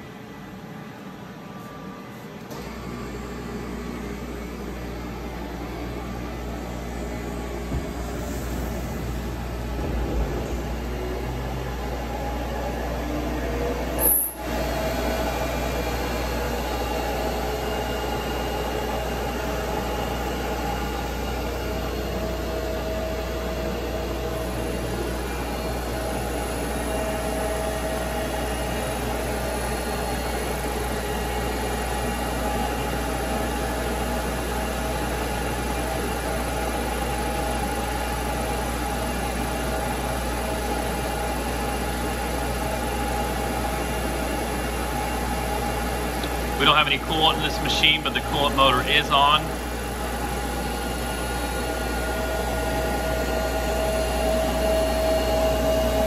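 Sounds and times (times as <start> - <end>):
faint machine whine: 0.0 - 56.0
grinding machine hum: 2.8 - 56.0.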